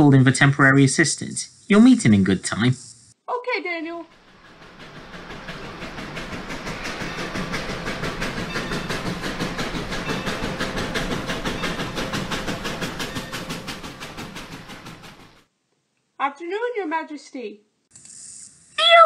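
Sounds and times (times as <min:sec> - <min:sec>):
steam locomotive chuffing: 0:03.6 - 0:15.5.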